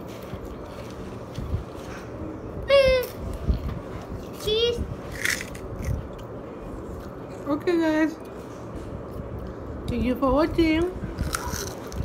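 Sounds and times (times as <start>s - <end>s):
child's high-pitched voice: 4.4s - 4.9s
crackers being bitten and chewed: 5.1s - 6.4s, 11.1s - 12.0s.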